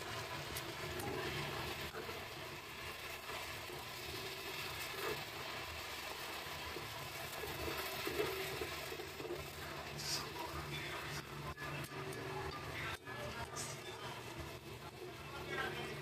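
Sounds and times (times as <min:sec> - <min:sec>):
meat sizzling in a pan: 0:00.0 - 0:16.0
spatula stirring in a pan: 0:00.0 - 0:16.0.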